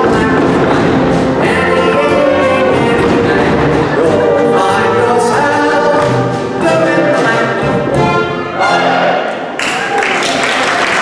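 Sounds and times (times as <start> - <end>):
dance band playing: 0.0 - 9.9.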